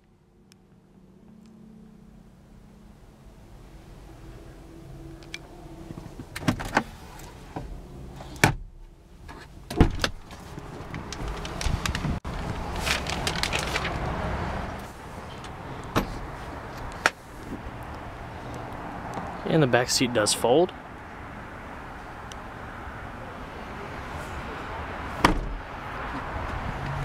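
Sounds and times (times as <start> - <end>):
rustling: 10.2 - 14.0.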